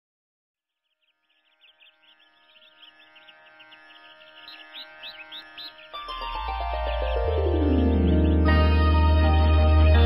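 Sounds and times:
bird-like chirps: 0:00.7 - 0:08.7
ambient drone of held tones: 0:01.4 - 0:10.0.

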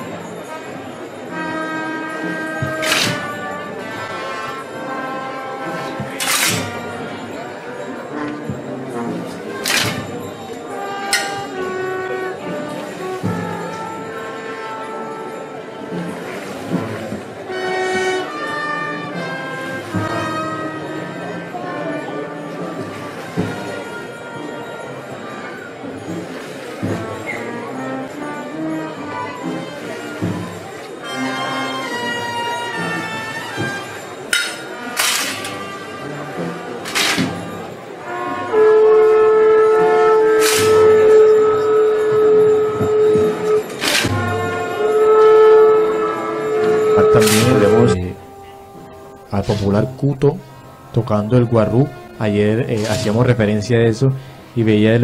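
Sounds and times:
brass band funeral march: 0:00.0 - 0:55.0.

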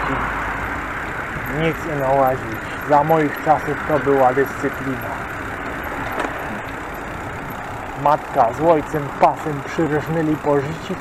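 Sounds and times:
tyres rolling on pavement: 0:00.0 - 0:11.0.

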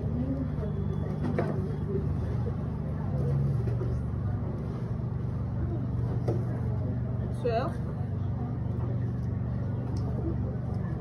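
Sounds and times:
faint background voices: 0:00.0 - 0:11.0
low mechanical hum: 0:00.0 - 0:11.0.

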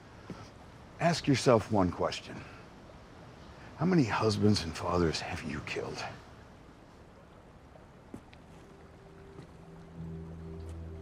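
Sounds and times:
water around a boat: 0:00.0 - 0:11.0
low music drone: 0:08.7 - 0:11.0.

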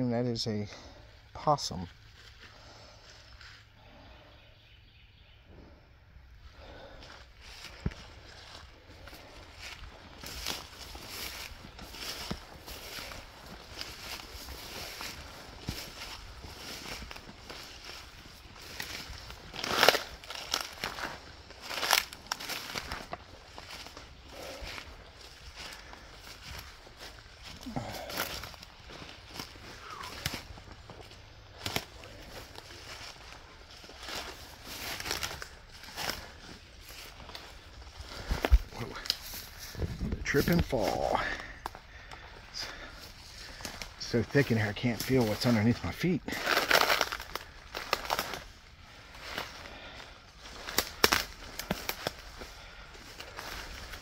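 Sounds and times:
footsteps crunching through undergrowth: 0:00.6 - 0:04.2, 0:06.5 - 0:54.0.

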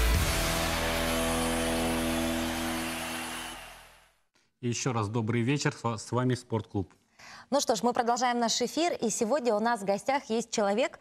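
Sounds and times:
sports intro jingle: 0:00.0 - 0:04.0.

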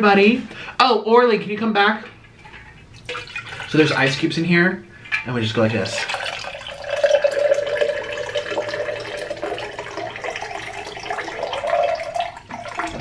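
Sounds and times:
water pouring into glass with ice: 0:02.9 - 0:03.9, 0:06.0 - 0:13.0.

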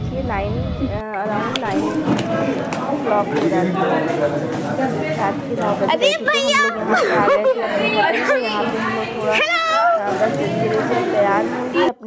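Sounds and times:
children's voices: 0:00.0 - 0:12.0
people chattering: 0:00.0 - 0:12.0.

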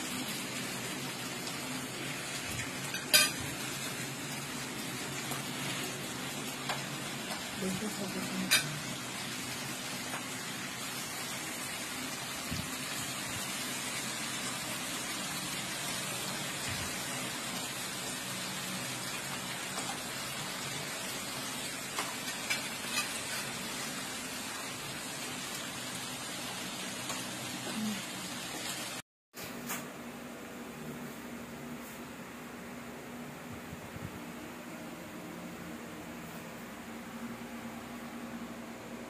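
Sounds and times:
meat sizzling in a griddle pan: 0:00.0 - 0:29.0.

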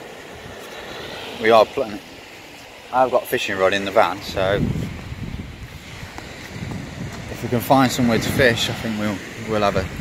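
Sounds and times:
wind buffeting microphone: 0:02.5 - 0:10.0.

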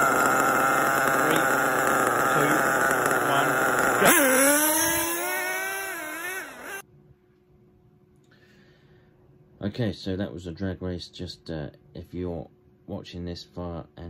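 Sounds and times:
small engines buzzing and revving: 0:00.0 - 0:06.8.

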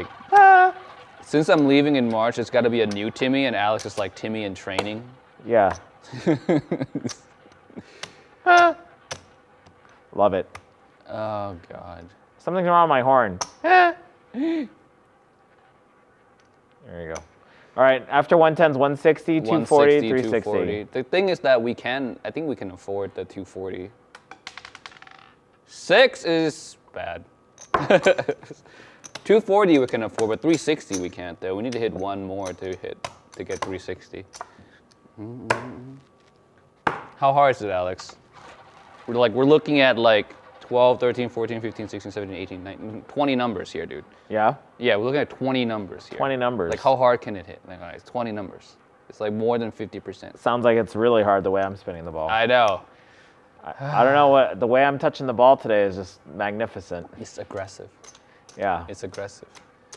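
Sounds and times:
murmured voice: 0:35.2 - 0:36.1.

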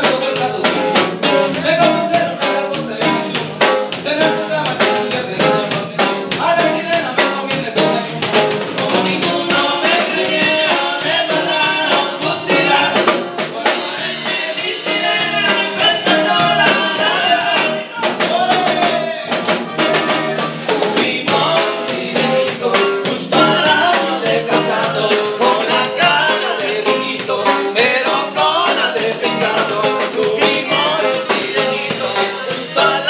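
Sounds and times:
men singing together: 0:00.0 - 0:33.0
percussion beat: 0:00.0 - 0:33.0
strummed guitars: 0:00.0 - 0:33.0.

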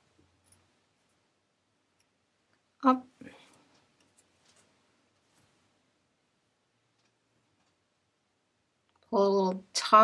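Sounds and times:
person speaking word: 0:02.8 - 0:03.5.

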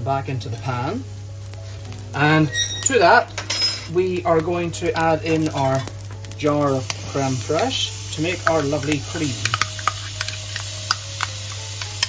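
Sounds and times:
food crackling in a frying pan: 0:00.0 - 0:12.0
cream spooned into pan: 0:04.3 - 0:12.0.

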